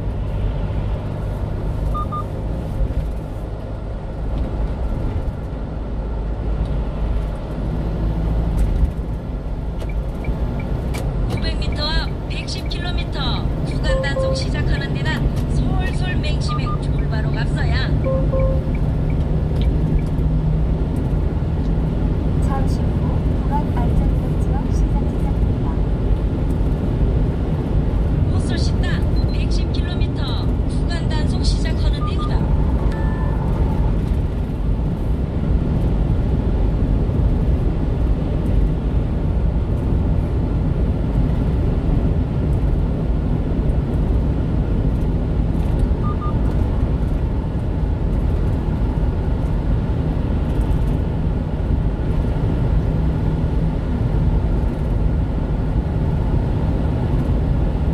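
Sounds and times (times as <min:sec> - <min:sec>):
truck road and engine rumble: 0:00.0 - 0:57.9.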